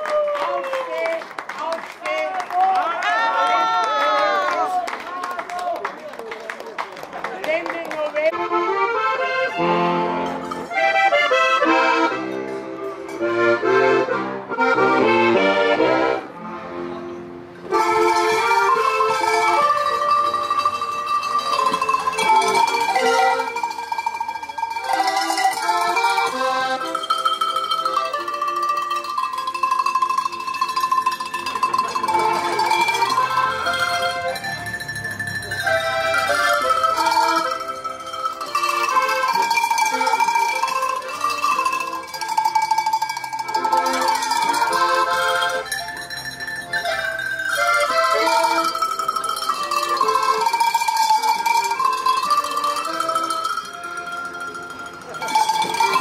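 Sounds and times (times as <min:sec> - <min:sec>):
accordion folk tune: 0:07.6 - 0:56.0
tuned cowbells struck: 0:18.0 - 0:56.0.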